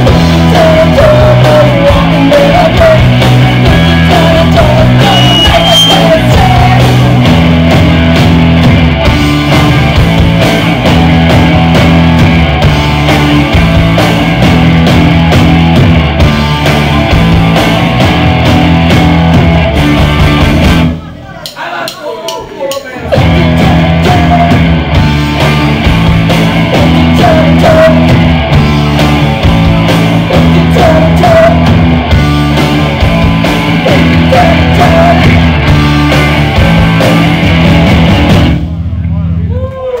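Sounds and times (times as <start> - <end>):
punk rock band playing: 0.0 - 21.2, 22.3 - 39.0.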